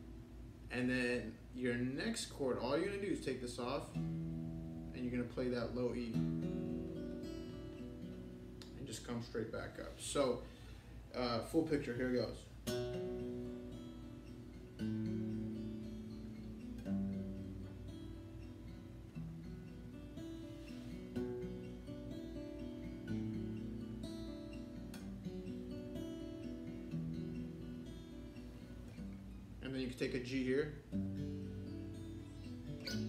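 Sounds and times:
finger-picked acoustic guitar: 0.0 - 33.0.

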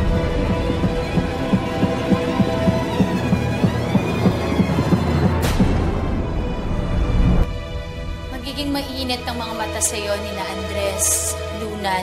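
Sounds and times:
low throbbing pulse: 0.0 - 10.2.

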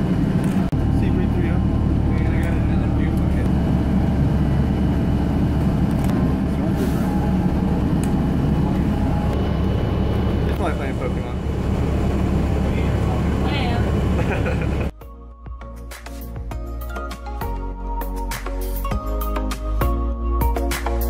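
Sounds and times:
bus engine rumble: 0.0 - 15.0
road noise: 0.0 - 15.0.

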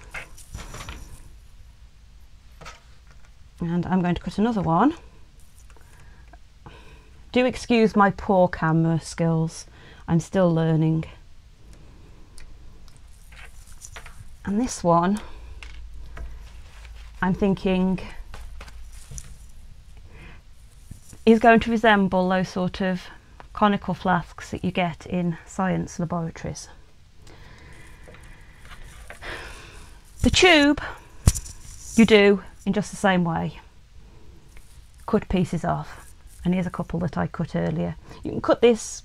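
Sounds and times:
soft rustle: 0.0 - 8.9, 10.8 - 24.9, 27.2 - 39.0
low steady hum: 0.0 - 39.0
plastic vials moved on mat: 12.9 - 14.4, 15.2 - 21.8, 27.7 - 32.2.

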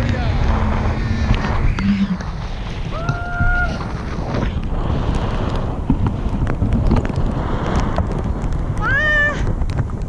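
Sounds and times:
wind buffeting microphone: 0.0 - 10.0.

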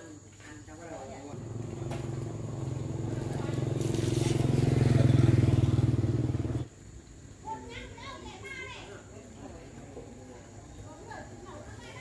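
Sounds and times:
motorbike engine passing by: 1.3 - 6.7.

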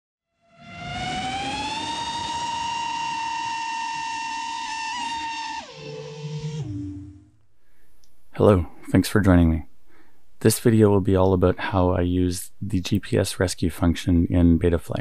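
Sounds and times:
drone motors and propellers whining: 0.4 - 7.4.

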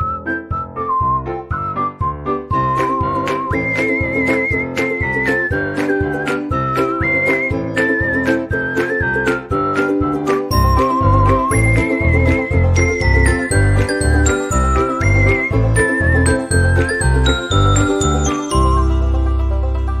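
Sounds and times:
whistled melody: 0.0 - 19.8
bouncing bass: 0.0 - 20.0
upbeat jingle music: 2.5 - 20.0
bright bell-like notes: 16.3 - 19.2.

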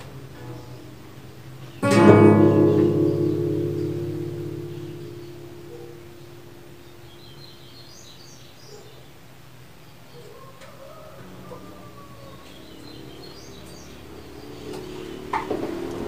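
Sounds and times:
faint bird chirps: 1.6 - 9.2
acoustic guitar chord ringing: 1.8 - 8.0.

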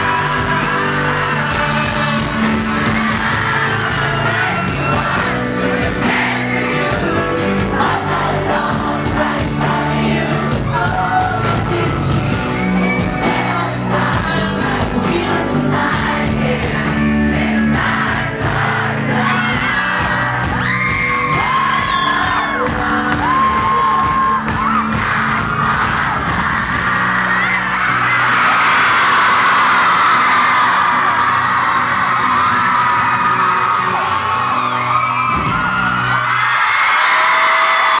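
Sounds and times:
live band playing: 0.0 - 36.4
crowd screaming and cheering: 0.0 - 38.0.

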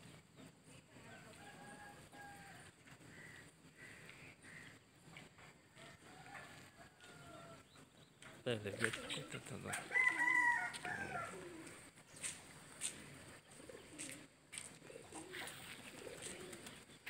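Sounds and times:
rooster crowing: 9.6 - 11.6.

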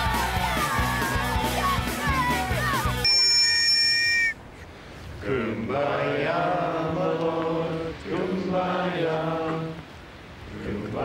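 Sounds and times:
shrill metal whistle blast: 3.0 - 4.4
voices singing in unison: 5.1 - 11.0.

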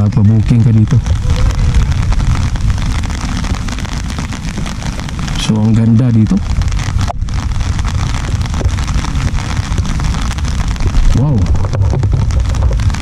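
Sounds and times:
rain falling on an umbrella: 0.0 - 13.0.

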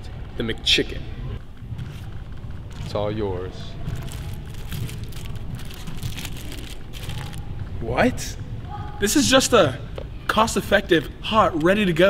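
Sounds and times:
paper wrapper crinkling: 3.8 - 7.5.

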